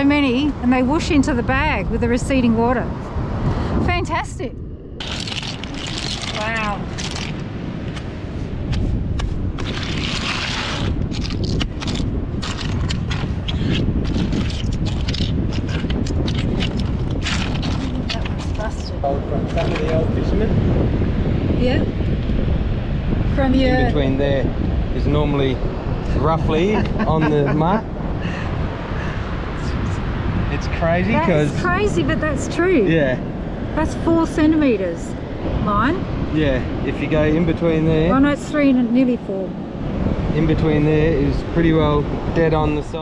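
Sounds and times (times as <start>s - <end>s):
wind rumbling on microphone: 0.0s - 43.0s
surf on a beach: 5.5s - 43.0s.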